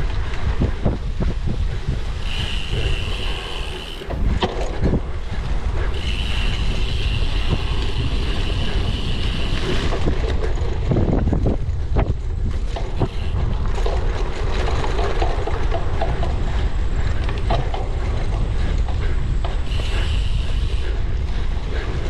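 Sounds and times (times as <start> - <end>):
bike rattling and knocking: 0.0 - 22.0
wind buffeting microphone: 0.0 - 22.0
high steady whir: 2.2 - 4.4.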